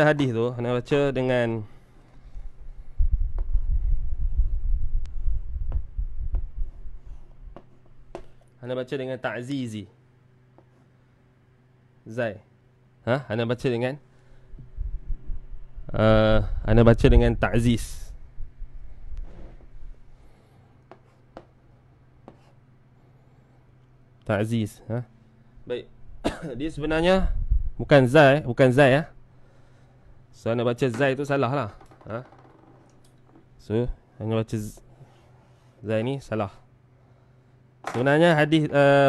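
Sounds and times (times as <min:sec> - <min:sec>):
steady low hum: 0:00.0 - 0:39.0
low rumble from blackboard: 0:01.7 - 0:08.4, 0:14.4 - 0:20.4
sharp chalk taps: 0:20.9 - 0:21.6, 0:22.2 - 0:22.6.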